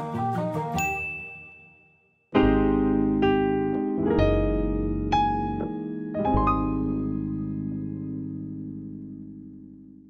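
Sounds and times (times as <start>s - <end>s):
bright ding: 0.8s - 2.3s
light melodic notes: 2.4s - 10.0s.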